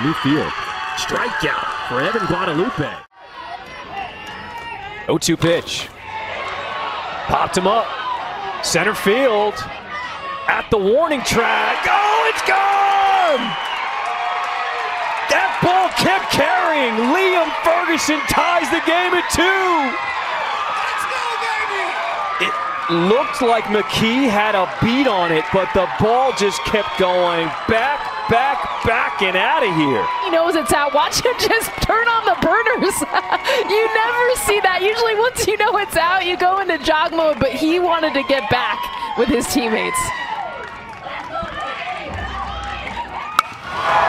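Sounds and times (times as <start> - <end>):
crowd cheering and shouting: 0.0 - 44.0
spectators chatting: 41.0 - 44.0.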